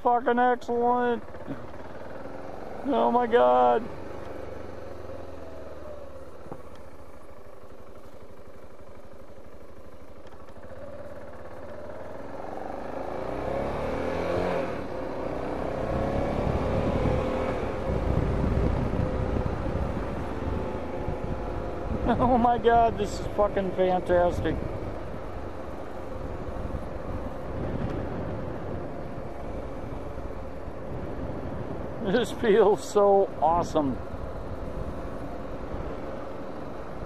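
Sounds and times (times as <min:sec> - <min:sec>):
motorcycle engine accelerating: 0:00.8 - 0:37.0
wind rumble on microphone: 0:15.8 - 0:23.1, 0:26.2 - 0:32.2, 0:33.6 - 0:36.0.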